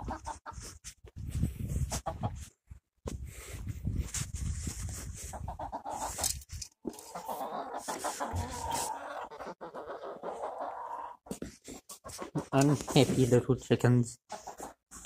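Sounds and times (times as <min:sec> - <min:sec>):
hens clucking: 0:00.0 - 0:00.8, 0:01.9 - 0:02.6, 0:05.2 - 0:13.5, 0:14.3 - 0:15.0.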